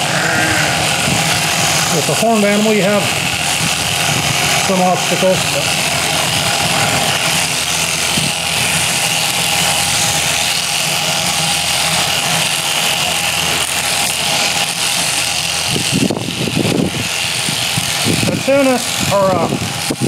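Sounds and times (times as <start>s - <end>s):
electric shears cutting fleece: 0.0s - 20.0s.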